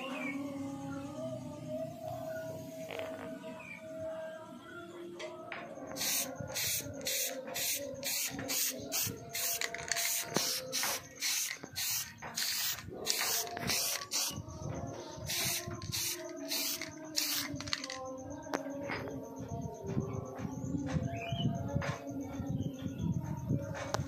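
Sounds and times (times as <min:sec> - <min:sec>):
aerosol spray can hissing: 0:05.9 - 0:14.4, 0:15.3 - 0:18.0.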